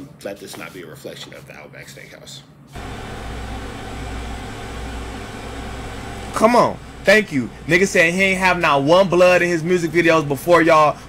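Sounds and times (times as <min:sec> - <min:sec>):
steady low hum: 0:02.4 - 0:11.0.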